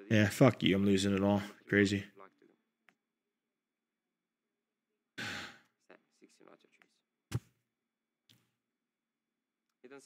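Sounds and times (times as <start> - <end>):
man sighing heavily: 5.2 - 5.6.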